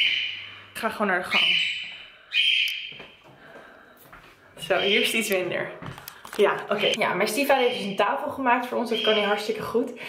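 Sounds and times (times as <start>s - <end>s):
pet birds calling: 0.0s - 0.5s, 1.3s - 3.0s, 8.8s - 9.5s.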